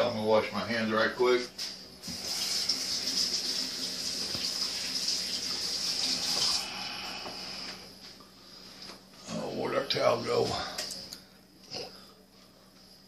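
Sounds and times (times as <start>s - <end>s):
faucet running over hands: 2.1s - 6.7s
water trickle: 2.2s - 6.6s.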